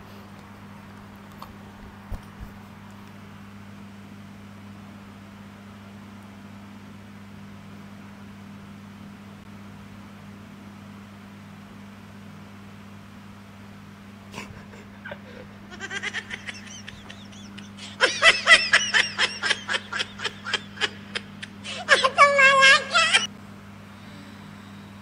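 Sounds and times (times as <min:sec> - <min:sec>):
low room hum: 0:00.0 - 0:25.0
laughter: 0:14.4 - 0:23.3.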